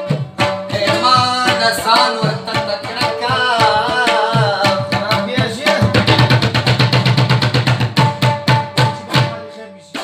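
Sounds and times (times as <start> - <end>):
tabla playing fast strokes: 0.0 - 10.0.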